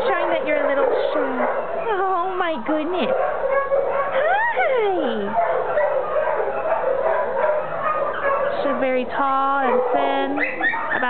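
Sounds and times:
dogs barking and whining: 0.0 - 11.0.

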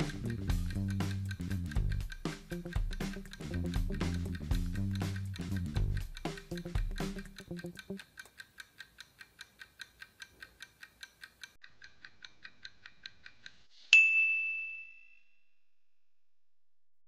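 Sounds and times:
countdown timer ticking: 0.0 - 10.4
bell ding: 14.0 - 15.4.

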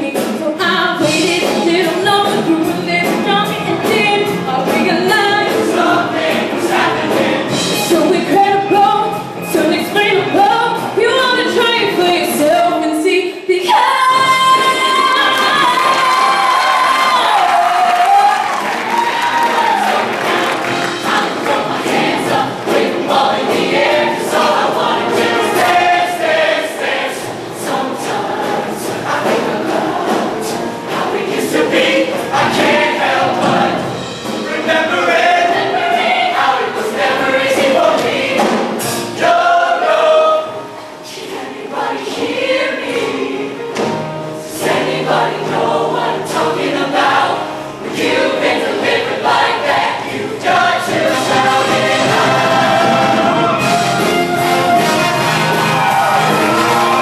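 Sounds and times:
choir singing over accompaniment: 0.0 - 12.8, 13.4 - 57.0.

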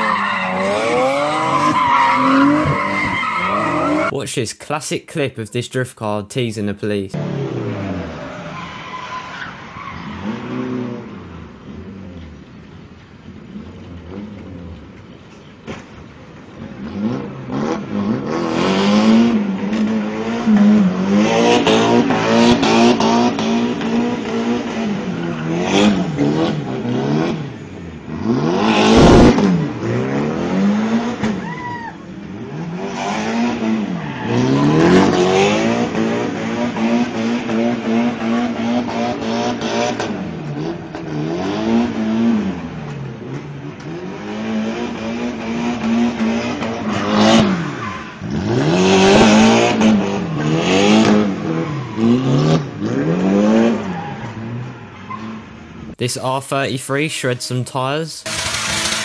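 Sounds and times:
car engine at high revs: 0.0 - 4.1, 15.7 - 31.4, 32.2 - 55.8, 58.2 - 59.0.

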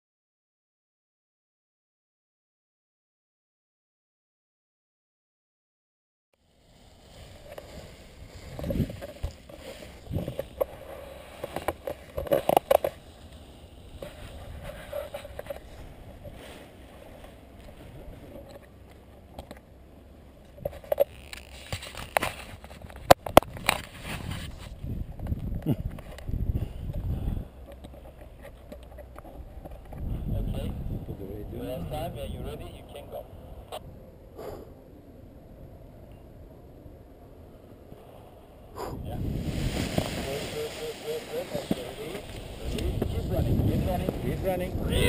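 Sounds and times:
wind buffeting microphone: 8.1 - 11.0, 23.4 - 27.6, 29.4 - 34.0, 38.8 - 45.0.

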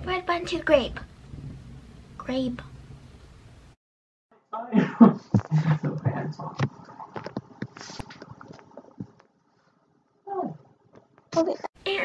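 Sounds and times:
girl making non-word noises: 11.4 - 11.8.

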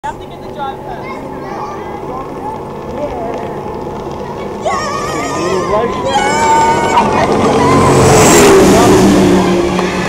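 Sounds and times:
speedboat engine at full speed: 0.2 - 10.0.

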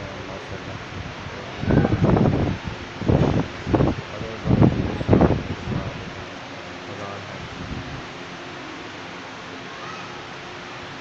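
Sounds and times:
background hiss: 0.0 - 11.0
person speaking: 4.0 - 7.6.

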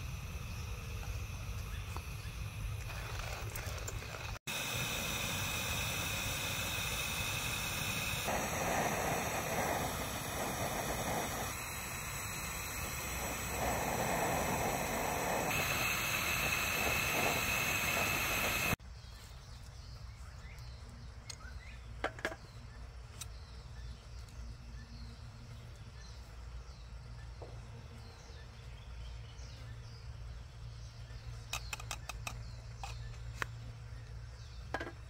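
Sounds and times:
gas stove burner hissing: 0.0 - 18.8.

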